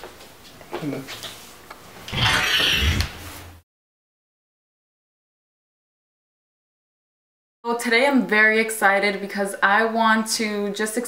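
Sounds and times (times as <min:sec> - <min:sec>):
breathy snarling hiss: 0:02.1 - 0:03.2.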